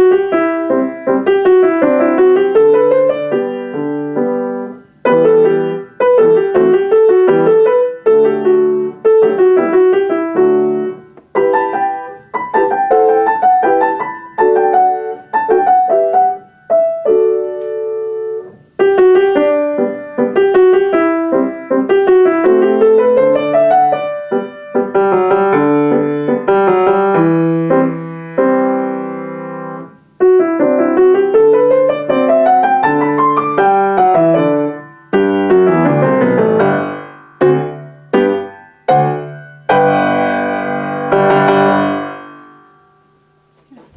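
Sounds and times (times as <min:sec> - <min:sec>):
grand piano piece: 0:00.0 - 0:43.9.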